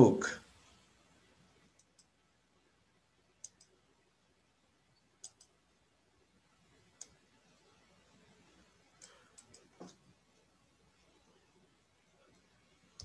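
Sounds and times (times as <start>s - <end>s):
computer mouse clicks: 1.8s - 2.1s, 3.4s - 3.8s, 5.2s - 5.6s, 6.9s - 7.2s, 8.9s - 10.0s.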